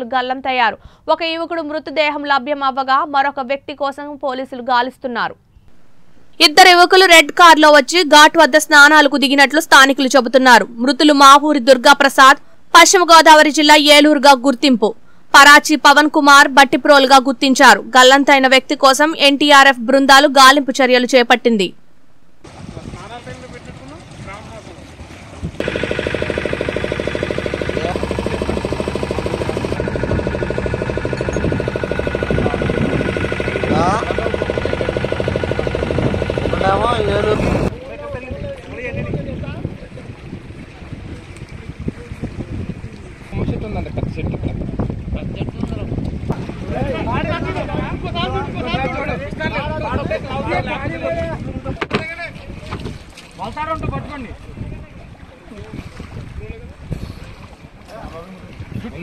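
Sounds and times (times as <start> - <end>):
wind noise on microphone: 22.4 - 25.7, 29.2 - 59.0
boat engine running: 22.4 - 37.8, 39.4 - 50.8
people speaking: 33.7 - 34.4, 36.5 - 40.1, 46.7 - 52.5.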